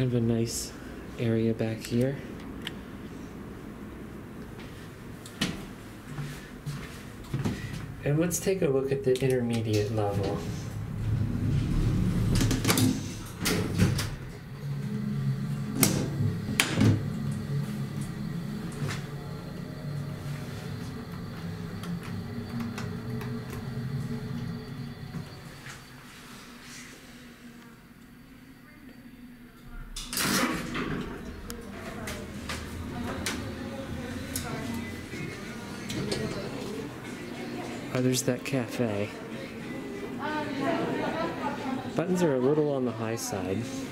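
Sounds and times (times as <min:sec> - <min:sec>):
elevator humming: 0:00.0 - 0:43.9
voices in hallway: 0:00.0 - 0:43.9
elevator doors sliding open: 0:09.5 - 0:26.0, 0:29.8 - 0:38.0.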